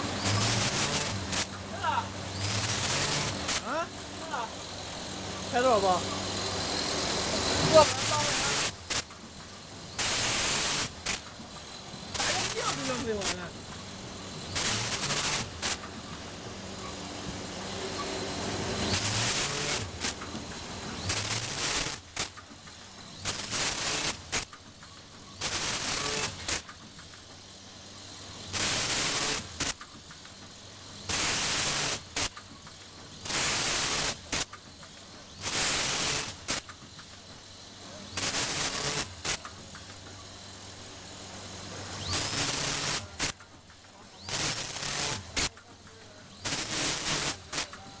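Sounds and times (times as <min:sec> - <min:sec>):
machine hissing bursts: 0:00.0 - 0:48.0.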